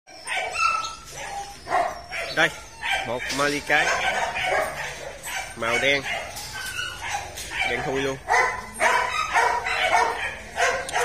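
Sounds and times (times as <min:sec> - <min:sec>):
dog whining: 0:00.1 - 0:11.0
dog barking: 0:00.3 - 0:11.0.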